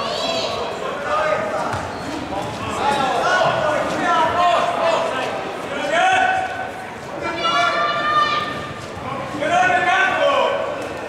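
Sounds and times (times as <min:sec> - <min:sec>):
people shouting: 0:07.2 - 0:08.7.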